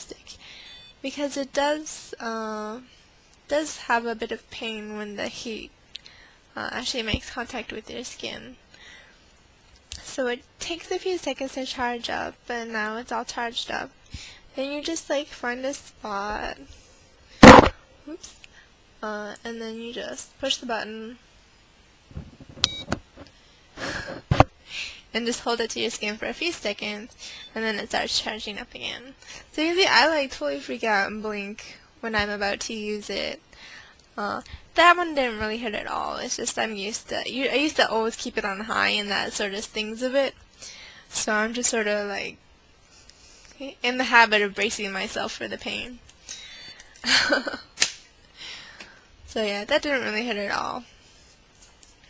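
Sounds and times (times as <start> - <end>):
short high-pitched beep: 22.6 - 23.0.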